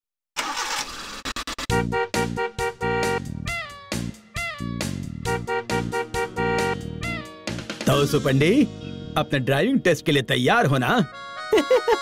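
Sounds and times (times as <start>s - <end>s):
cartoon car engine cranking: 0.4s - 1.9s
music with pulsing chords: 1.7s - 9.3s.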